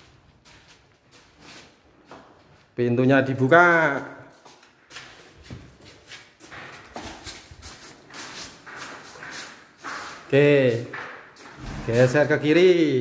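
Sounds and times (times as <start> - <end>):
wooden door knocks and scuffs: 11.6 - 12.2.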